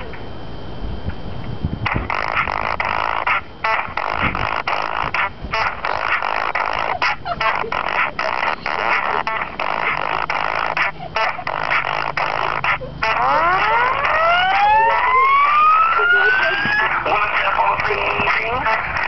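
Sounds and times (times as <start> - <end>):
dense noisy wash: 0.0 - 19.0
rising siren-like sweeps: 12.8 - 17.0.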